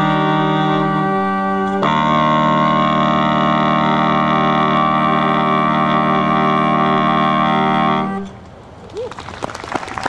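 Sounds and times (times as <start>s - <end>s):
saxophone quartet sustained chord: 0.0s - 8.4s.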